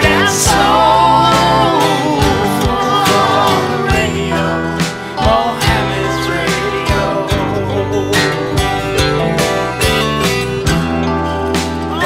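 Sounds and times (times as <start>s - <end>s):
bass: 0.0s - 12.0s
keyboards: 0.0s - 12.0s
strummed acoustic guitar: 0.0s - 12.0s.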